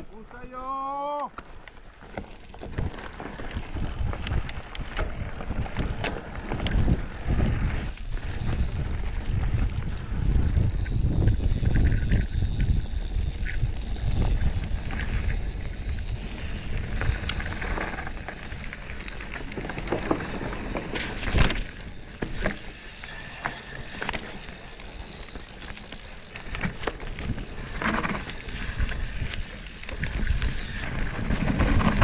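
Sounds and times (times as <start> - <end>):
bike rattling and clicking: 0.0 - 32.0
low rumble of tyres on gravel: 0.0 - 32.0
wind buffeting microphone: 2.5 - 25.6, 26.4 - 32.0.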